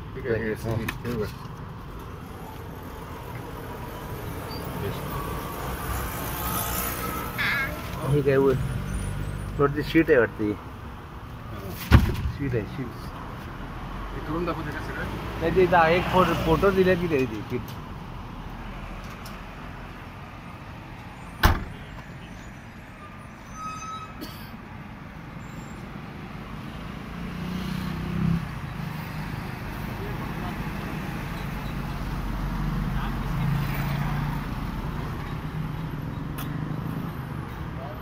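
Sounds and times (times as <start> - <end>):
car tailgate slamming shut: 11.9 - 12.3, 21.4 - 21.8.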